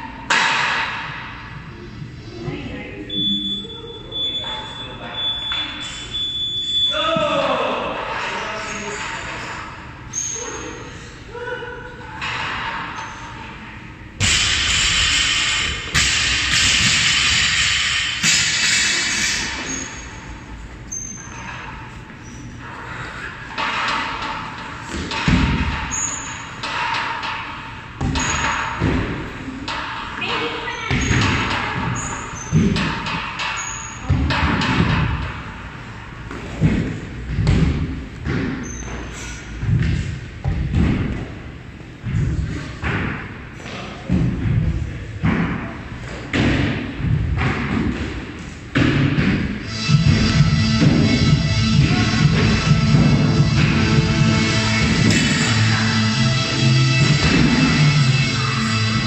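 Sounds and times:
voices in a large hall: 0.9 - 14.1.

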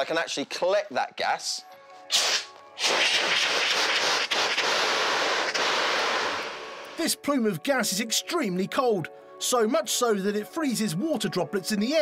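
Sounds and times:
fire extinguisher gas hissing: 2.1 - 7.0.

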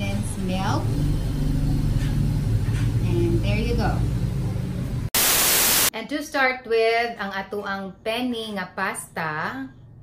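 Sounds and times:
static hiss burst: 5.1 - 5.9.

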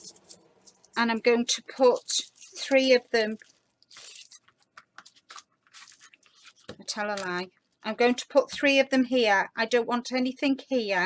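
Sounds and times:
paper card rustling: 0.0 - 1.0, 1.6 - 7.9
person speaking: 0.0 - 3.5, 6.6 - 11.0.

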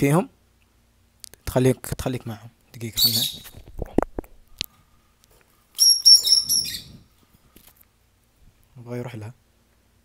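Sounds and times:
bird chirping shrilly: 3.0 - 3.4, 5.8 - 7.1.

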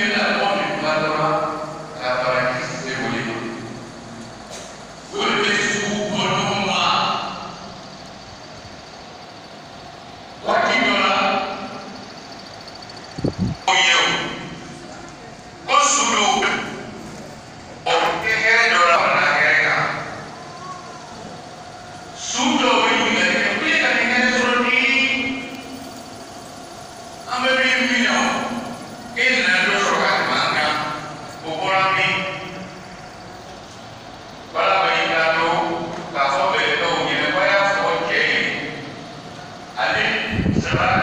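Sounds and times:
man speaking over loudspeaker: 0.0 - 3.8, 5.1 - 7.6, 10.4 - 11.9, 13.6 - 14.7, 15.6 - 17.0, 17.8 - 20.3, 22.2 - 25.5, 27.3 - 32.8, 34.5 - 39.0, 39.8 - 41.0
low hall room noise: 0.0 - 41.0.

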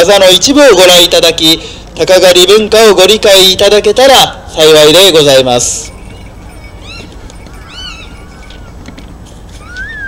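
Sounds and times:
high bird chirps: 5.9 - 8.8
whistled call: 9.6 - 10.0.

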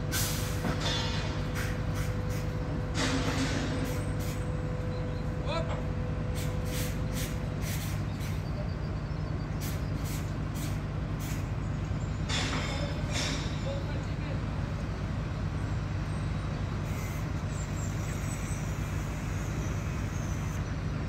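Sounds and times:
diesel engines running steadily: 0.0 - 21.0.

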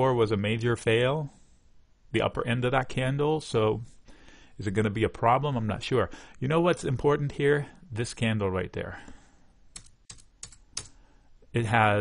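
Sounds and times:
keyboard typing clicks: 9.7 - 11.0.

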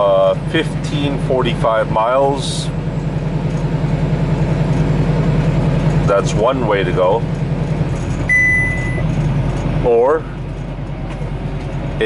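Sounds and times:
truck engine and road drone: 0.0 - 12.0
high electronic beep: 8.3 - 9.1.

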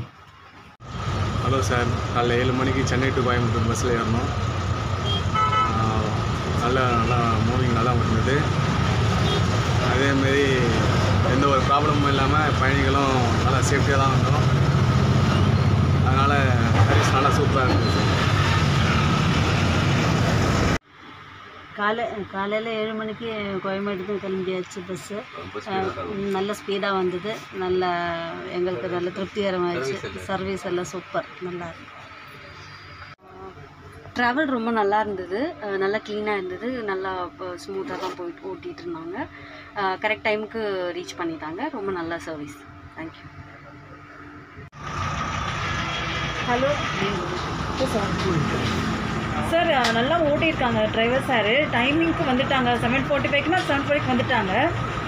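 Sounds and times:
bus engine drone: 0.0 - 34.1, 36.0 - 55.0.

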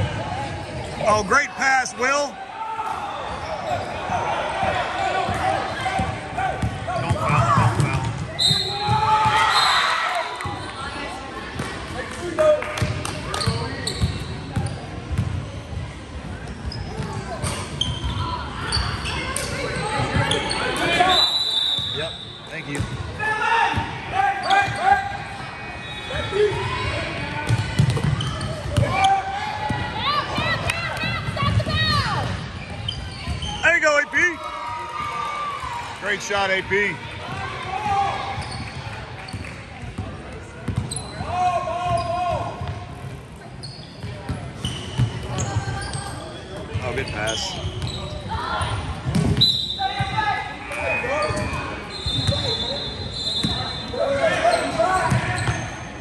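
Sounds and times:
shoe squeaks: 13.4 - 14.9, 16.5 - 22.8, 28.0 - 29.2, 31.8 - 33.8, 38.4 - 39.4, 40.7 - 42.3, 43.5 - 50.2, 50.8 - 56.0.

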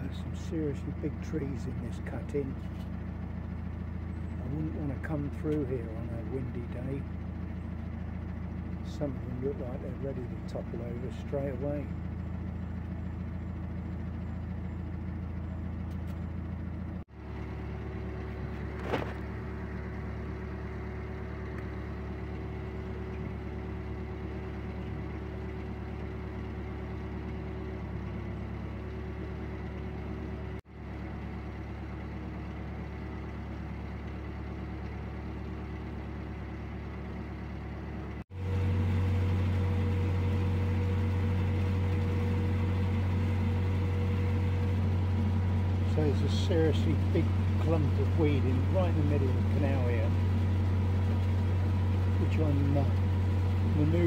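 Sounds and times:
boat diesel engine droning: 0.0 - 54.0.

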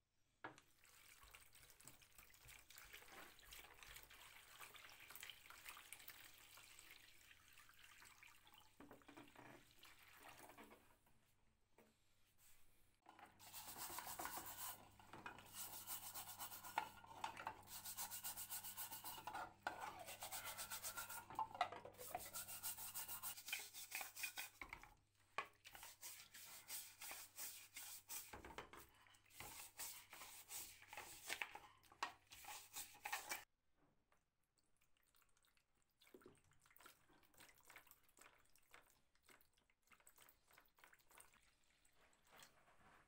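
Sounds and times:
plastic brush scrubbing metal: 13.4 - 24.7, 25.7 - 33.4.

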